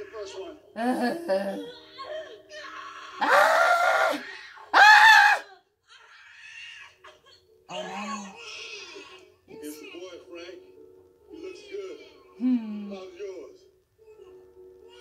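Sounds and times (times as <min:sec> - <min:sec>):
woman screaming: 0:03.2 - 0:05.5.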